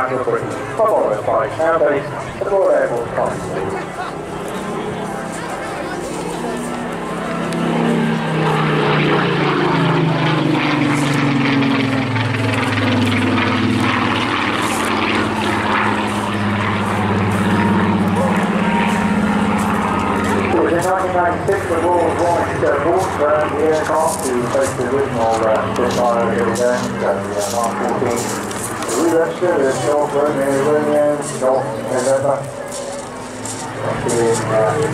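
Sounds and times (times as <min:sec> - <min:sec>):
propeller plane engine drone overhead: 0:00.0 - 0:34.9
man's voice: 0:20.4 - 0:32.6, 0:33.8 - 0:34.9.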